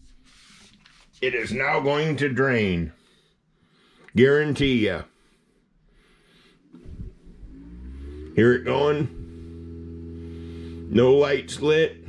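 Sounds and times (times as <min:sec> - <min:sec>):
dishwasher drain pump hum: 0:06.6 - 0:12.0
whine rising in pitch: 0:06.8 - 0:12.0.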